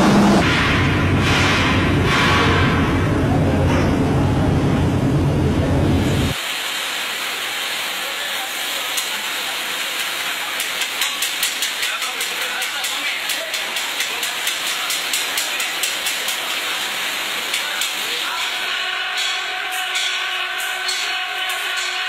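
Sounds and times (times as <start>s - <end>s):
batter sizzling in hot oil: 6.4s - 19.3s.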